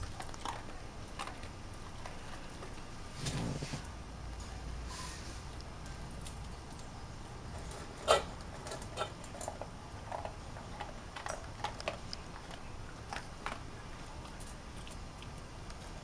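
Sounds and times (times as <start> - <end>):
dog crunching food: 0.0 - 2.9, 6.1 - 16.0.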